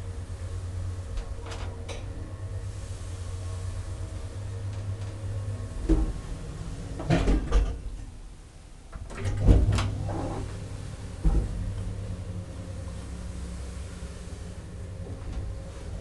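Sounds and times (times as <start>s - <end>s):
elevator doors rattling clatter: 0.0s - 16.0s
low hum: 0.0s - 16.0s
elevator door thump: 9.0s - 10.6s, 11.2s - 12.0s.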